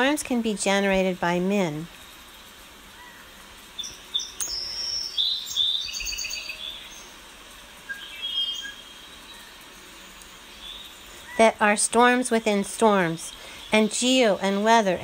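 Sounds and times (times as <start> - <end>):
faint hiss: 0.0 - 15.0
songbirds chirping: 0.0 - 15.0.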